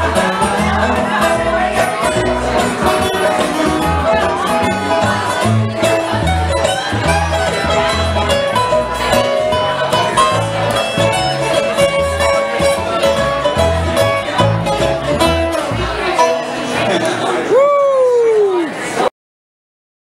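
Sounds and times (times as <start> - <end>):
banjo rolls: 0.0 - 17.5
acoustic guitar: 0.0 - 17.6
upright bass: 0.0 - 17.8.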